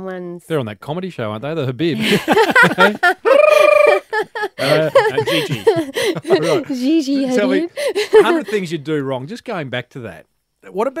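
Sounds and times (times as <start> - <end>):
people laughing: 2.0 - 8.7
high-pitched quivering note: 3.2 - 4.1.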